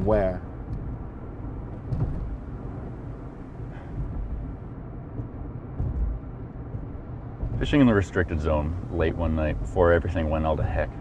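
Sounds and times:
car interior rumble: 0:00.0 - 0:11.0
faint knocks: 0:03.7 - 0:08.0.

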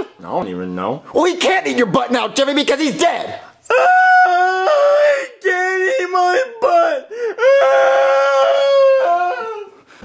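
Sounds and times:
person wailing and crying: 0:03.7 - 0:09.8.

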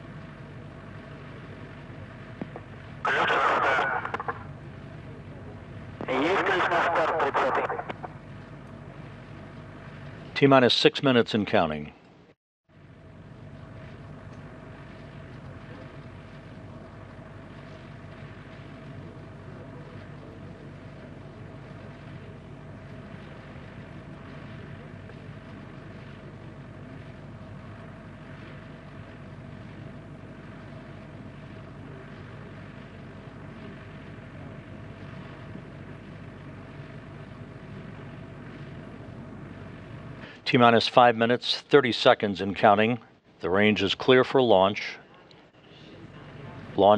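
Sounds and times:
low rumbling hiss: 0:00.0 - 0:12.0, 0:12.8 - 0:46.9
equipment hum: 0:00.0 - 0:46.9.

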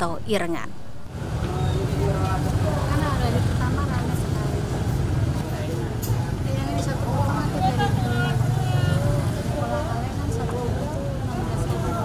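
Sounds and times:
woman talking: 0:00.0 - 0:00.8.

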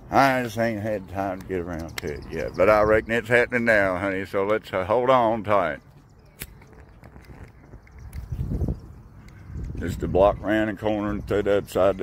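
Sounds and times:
faint footsteps on pavement: 0:00.0 - 0:12.0.

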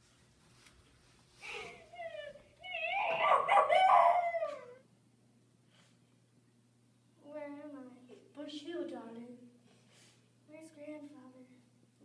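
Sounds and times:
high-pitched wavering cry: 0:02.0 - 0:04.9.

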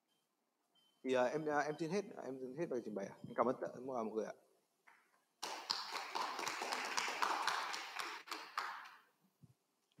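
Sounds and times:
audience applause: 0:05.4 - 0:09.0.

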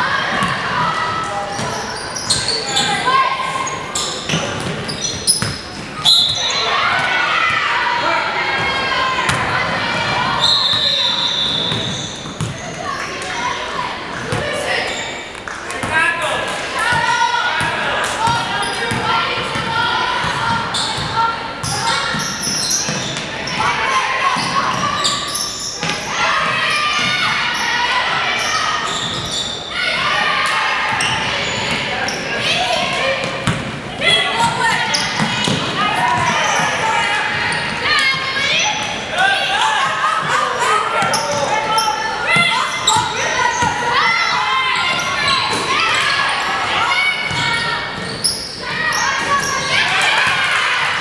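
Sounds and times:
voices echoing in gym: 0:00.0 - 0:51.0.

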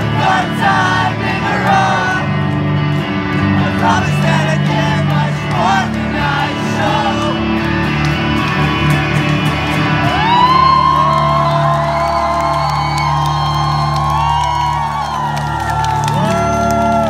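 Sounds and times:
crowd whooping and screaming: 0:08.2 - 0:17.0.

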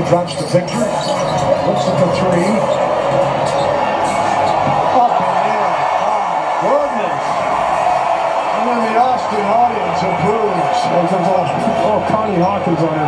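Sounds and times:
arena crowd noise: 0:00.0 - 0:13.0.

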